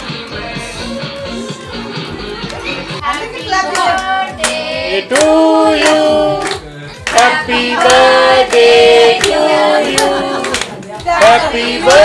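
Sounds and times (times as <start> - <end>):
background music with a beat: 0.0 - 12.0.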